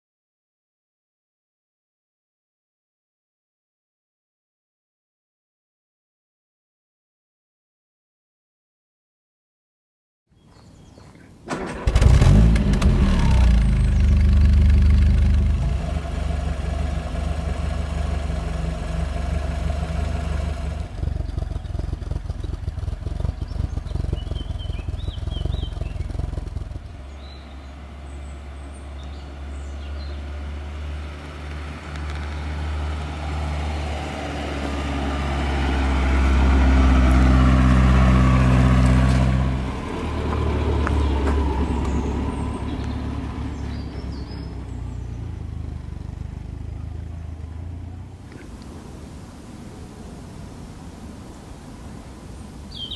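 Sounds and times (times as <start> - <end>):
car driving by: 11.4 - 52.9
car engine idling: 11.5 - 33.3, 36.0 - 48.6.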